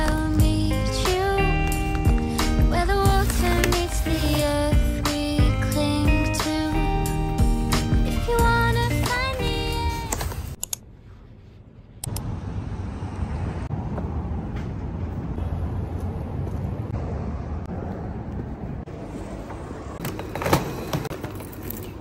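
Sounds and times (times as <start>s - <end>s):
background music: 0.0s - 10.6s.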